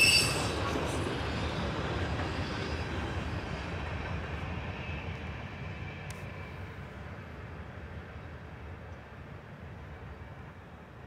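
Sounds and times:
freight train rolling past: 0.0 - 11.0.

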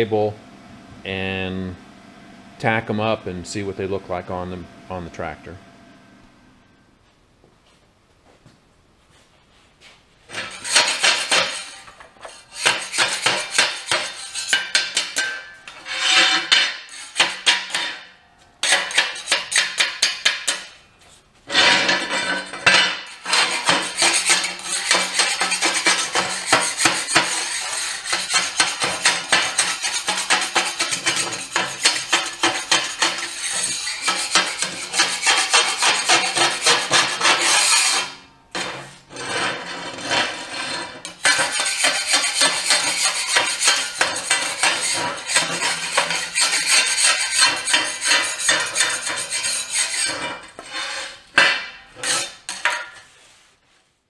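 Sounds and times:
hand scraper rasping on steel: 10.3 - 17.8, 18.6 - 20.7, 21.5 - 53.1.

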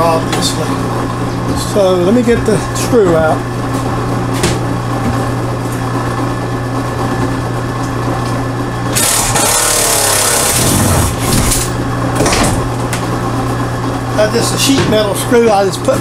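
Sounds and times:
steady low hum: 0.0 - 16.0
power driver whining: 8.7 - 13.1.

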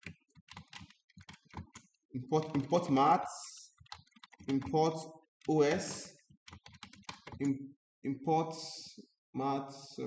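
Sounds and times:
typing on a keyboard: 0.0 - 7.6.

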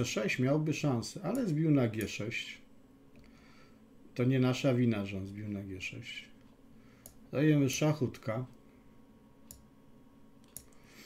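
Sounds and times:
computer mouse clicks: 9.4 - 9.7, 10.4 - 10.9.

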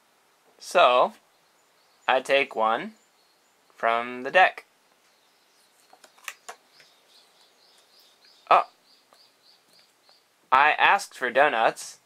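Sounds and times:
bird chirping: 1.0 - 10.6
playing cards clicking and sliding: 5.8 - 6.9.

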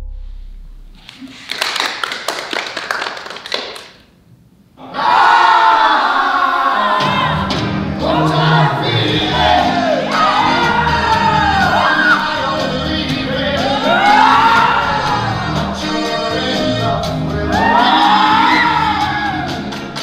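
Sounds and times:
group of voices singing: 4.8 - 20.0.

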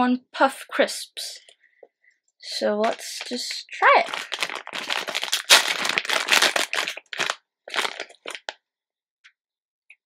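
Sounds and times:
plastic bag crinkling: 2.5 - 8.6.

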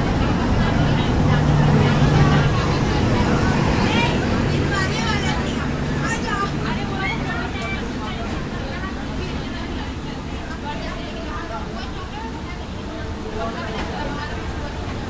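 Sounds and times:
people talking: 0.0 - 15.0
train coach rumbling: 0.0 - 15.0.

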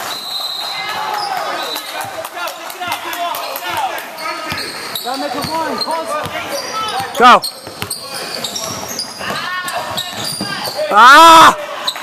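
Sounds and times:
voices in hall: 0.0 - 12.0
basketball bouncing on wooden floor: 5.3 - 10.8.

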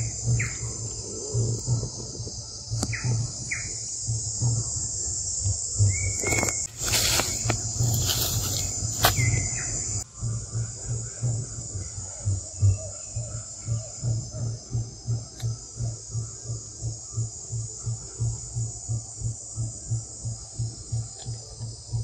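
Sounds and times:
insect chorus drone: 0.0 - 22.0
low repeating throb: 0.0 - 22.0
rustling noise: 6.2 - 9.5.

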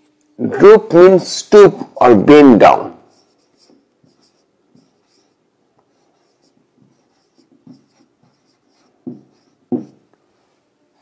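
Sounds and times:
marker pen scratching on whiteboard: 3.0 - 11.0.

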